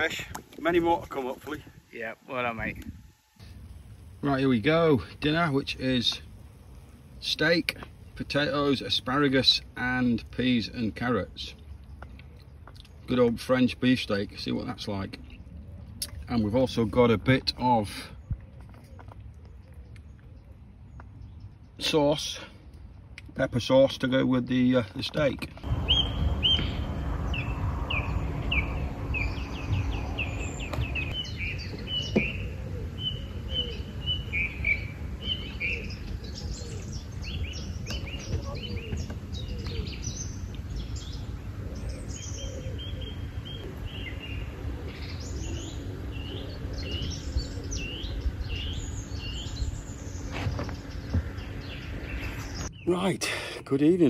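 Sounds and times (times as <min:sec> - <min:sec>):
birds singing and chirping: 0:00.0 - 0:54.0
low steady rumble: 0:25.5 - 0:54.0.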